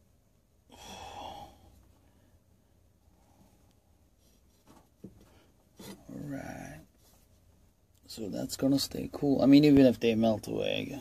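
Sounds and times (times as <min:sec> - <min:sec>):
person sighing heavily: 0:00.7 - 0:01.8.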